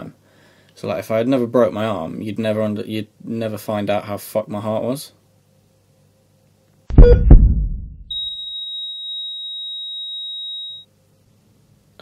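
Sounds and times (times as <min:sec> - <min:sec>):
low heartbeat thumps: 0:06.9 - 0:08.1.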